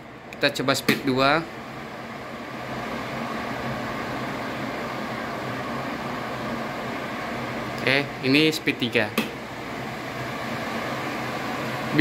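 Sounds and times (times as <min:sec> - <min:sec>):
extractor fan humming: 0:00.0 - 0:12.0.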